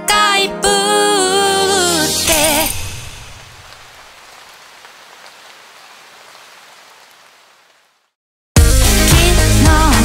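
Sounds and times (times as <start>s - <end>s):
soft rain-like hiss: 1.5s - 8.2s.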